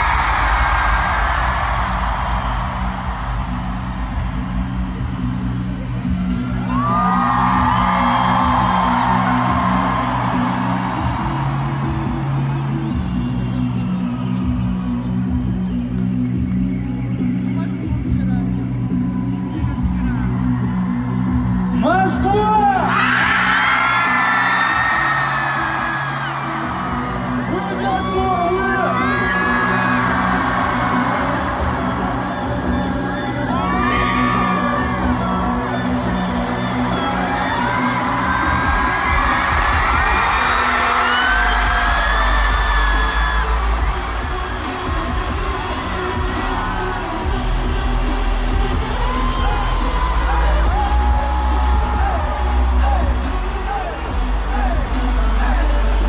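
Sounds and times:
live pop concert music: 0.0 - 56.0
crowd whooping: 6.3 - 16.2, 22.8 - 56.0
deep bass: 34.7 - 56.0.

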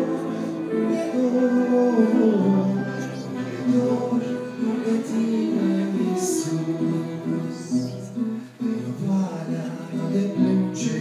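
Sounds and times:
church brass ensemble playing: 0.0 - 7.9.

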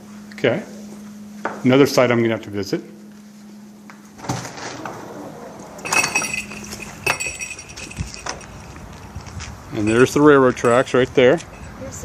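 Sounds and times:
bright ringing clinks: 5.8 - 11.8.

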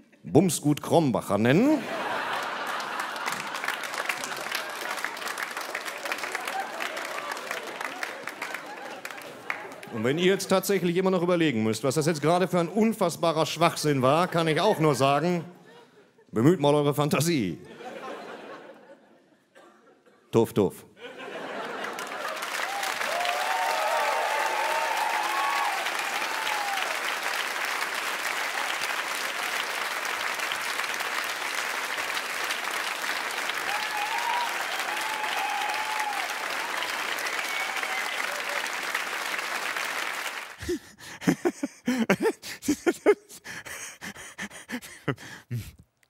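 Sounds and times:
audience cheering: 1.8 - 10.4, 21.3 - 40.7
audience applauding: 1.8 - 10.8, 21.3 - 42.8.

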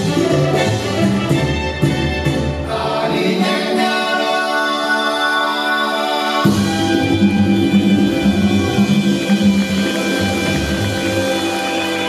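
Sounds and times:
salsa band playing: 0.0 - 12.0.

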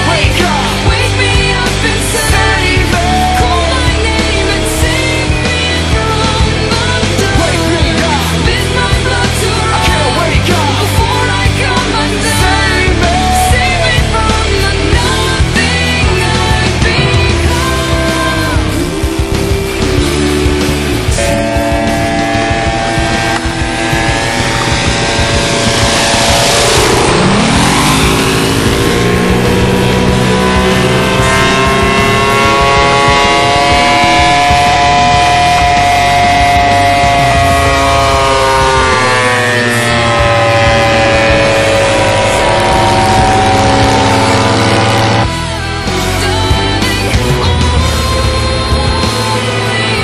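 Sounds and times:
model plane engine in flight: 0.0 - 45.4.

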